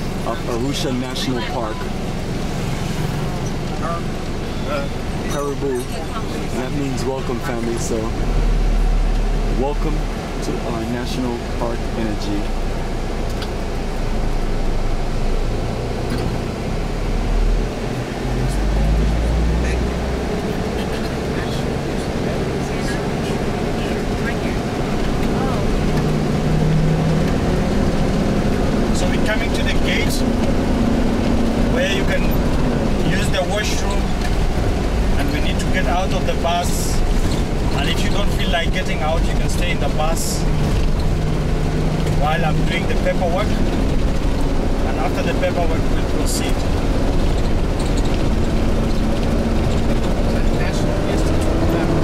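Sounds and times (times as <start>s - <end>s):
bus engine and tyres on gravel: 0.0s - 52.0s
passengers talking quietly: 0.2s - 2.2s, 20.6s - 26.0s.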